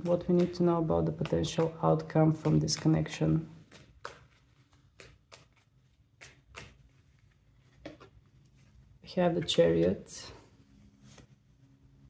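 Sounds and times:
cards being shuffled: 2.4 - 8.7.

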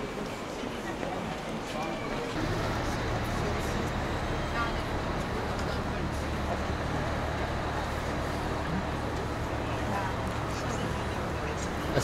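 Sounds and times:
passers-by talking: 0.0 - 12.0.

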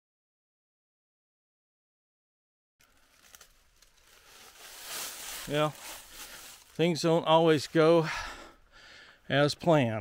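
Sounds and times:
dry leaves rustling and crackling: 2.8 - 8.0.

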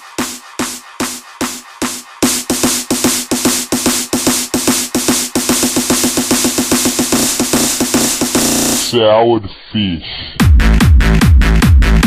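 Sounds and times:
distorted kick drum roll: 0.0 - 8.9, 10.4 - 12.0.

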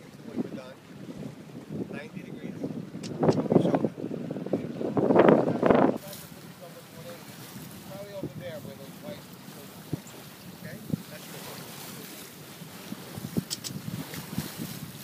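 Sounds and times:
water rushing past hull: 0.0 - 15.0
wind buffeting microphone: 0.0 - 15.0.

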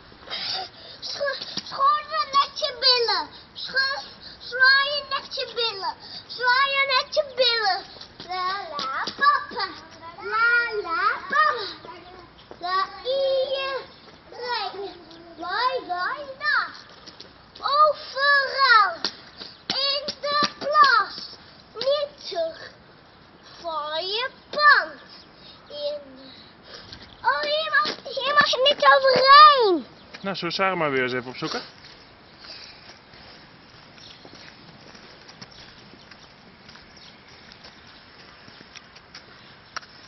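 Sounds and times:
child singing: 1.2 - 16.7.

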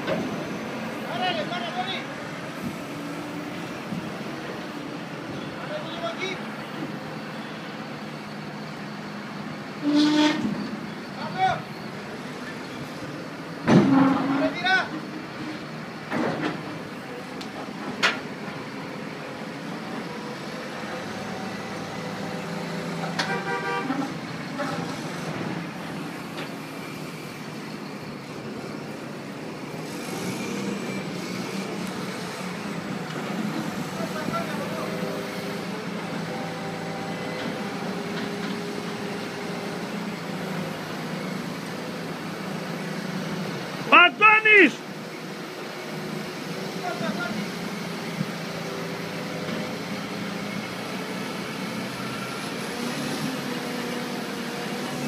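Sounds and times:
horn toot: 9.8 - 10.5.

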